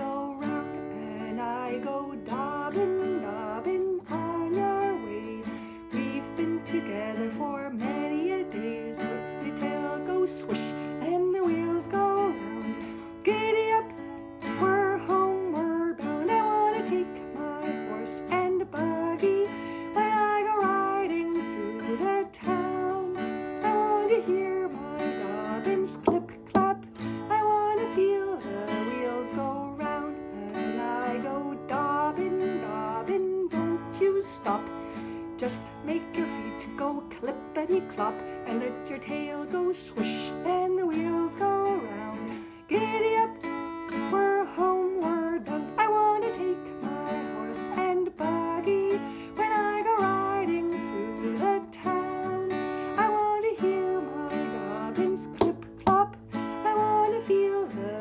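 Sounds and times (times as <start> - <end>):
acoustic guitar strumming: 0.0 - 58.0
woman singing: 0.0 - 58.0.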